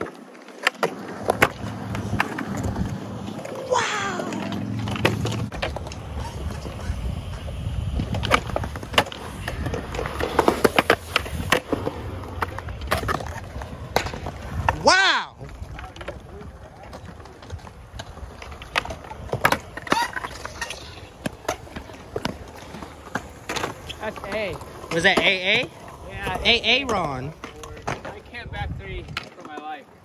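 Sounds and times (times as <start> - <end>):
skateboard clacks: 0.0 - 30.0
skateboard wheels rolling on concrete: 0.0 - 30.0
person shouting: 3.6 - 4.7, 14.8 - 15.4.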